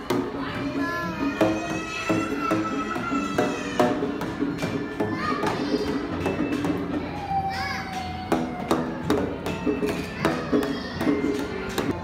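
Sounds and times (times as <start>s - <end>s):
children's voices: 0.0s - 12.0s.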